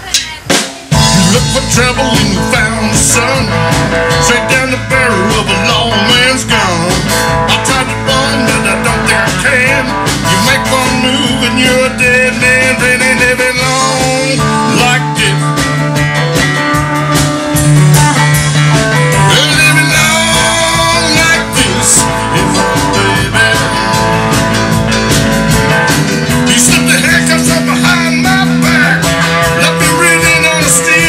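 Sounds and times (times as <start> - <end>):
bass guitar: 0.0 - 31.0
drums: 0.0 - 31.0
electric guitar lead with bent notes: 0.0 - 31.0
keyboard: 0.0 - 31.0.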